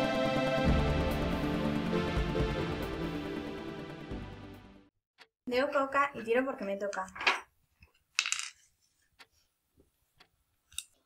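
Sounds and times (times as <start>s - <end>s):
die clattering on wooden board: 8.2s - 8.6s.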